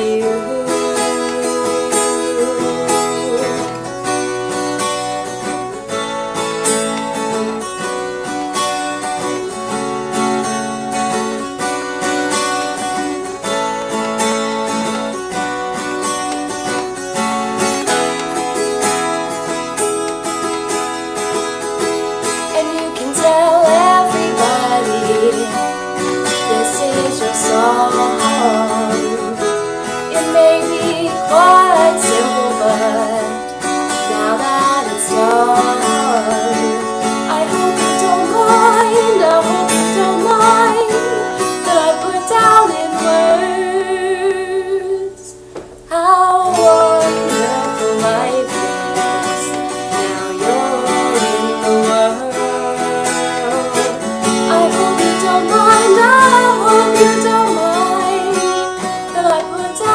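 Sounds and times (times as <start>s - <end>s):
woman singing: 0.0s - 5.7s, 22.2s - 59.9s
strummed acoustic guitar: 0.0s - 59.9s.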